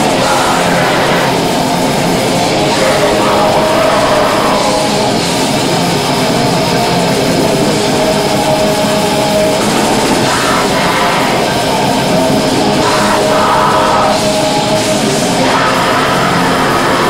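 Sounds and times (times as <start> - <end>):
metal band playing live: 0.0 - 17.0.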